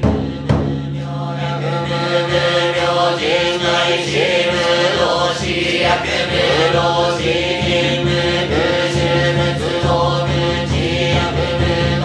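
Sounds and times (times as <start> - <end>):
monks chanting: 0.0 - 12.0.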